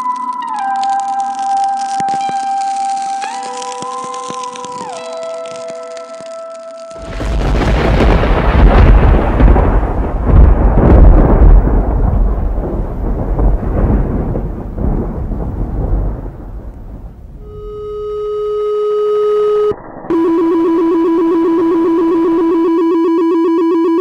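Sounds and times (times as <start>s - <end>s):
thunder clap and rumble: 7.0s - 17.7s
steady held tone: 17.4s - 24.0s.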